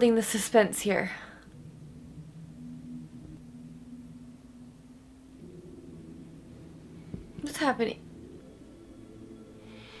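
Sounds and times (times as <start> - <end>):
eerie horror film score: 0.2 - 10.0.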